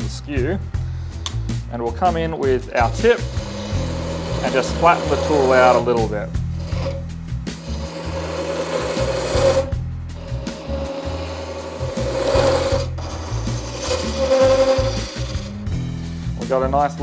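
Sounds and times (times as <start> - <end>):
chisel cutting spinning wood: 2.6 - 15.8
wood lathe humming: 2.7 - 15.7.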